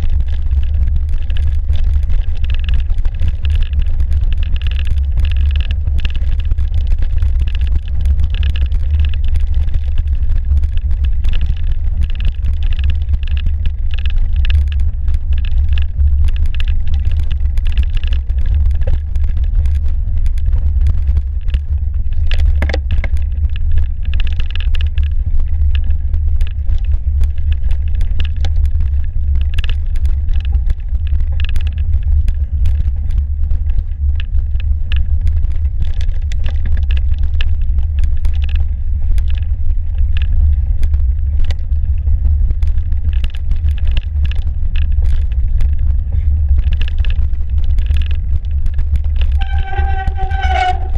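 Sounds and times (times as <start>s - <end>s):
bike clicks and rattles: 0.0s - 50.9s
low rumble on microphone: 0.0s - 50.9s.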